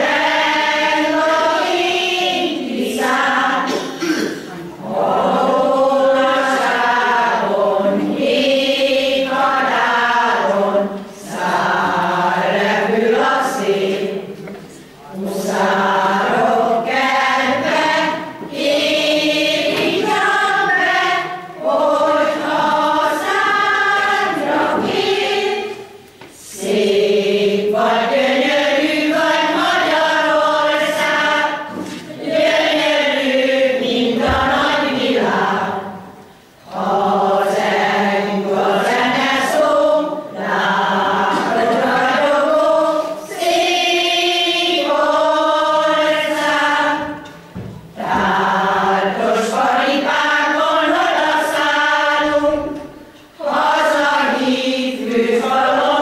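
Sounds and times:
choir singing unaccompanied: 0:00.0 - 0:56.0.

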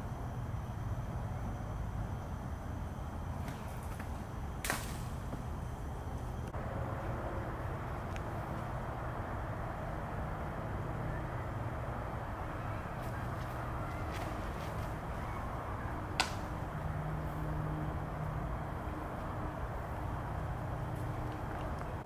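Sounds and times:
low outdoor hum: 0:00.0 - 0:22.0
disc throw snap: 0:03.4 - 0:05.6, 0:13.0 - 0:15.3, 0:16.1 - 0:16.6
faint footfalls: 0:12.5 - 0:15.5.

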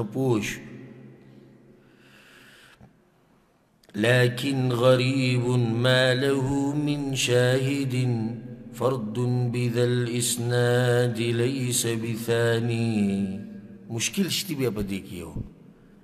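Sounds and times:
man chanting melodically: 0:00.0 - 0:00.8, 0:03.9 - 0:15.5.

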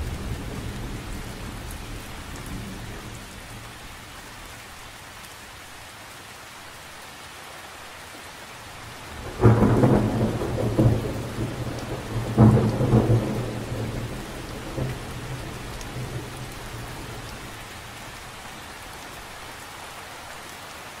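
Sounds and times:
rain falling on lake water: 0:00.0 - 0:21.0
thunder clap rolling: 0:09.1 - 0:17.5.

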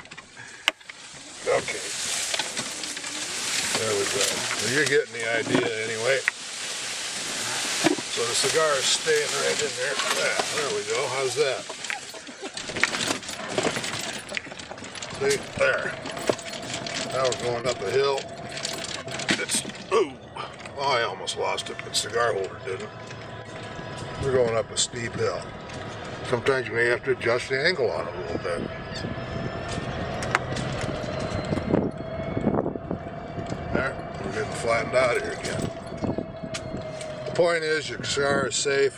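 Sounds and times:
golf cart rattling over bumps: 0:00.0 - 0:38.9.

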